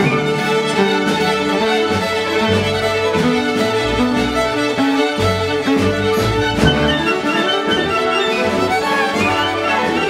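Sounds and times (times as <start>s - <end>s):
orchestra strings sustained notes: 0.0s - 10.0s
solo violin: 0.0s - 10.0s.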